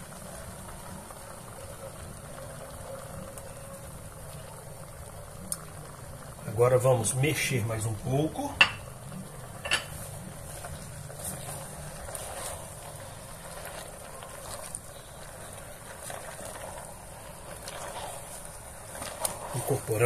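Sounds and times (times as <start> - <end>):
faint spatula scrapes: 9.9 - 20.0
spatula stirring meat: 9.9 - 20.0.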